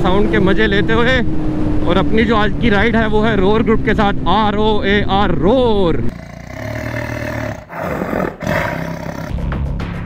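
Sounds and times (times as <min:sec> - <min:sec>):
lion roaring: 0:06.1 - 0:09.4.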